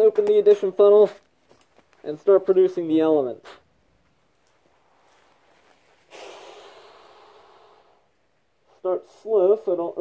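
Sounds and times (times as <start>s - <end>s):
person breathing out: 6.1s - 8.1s.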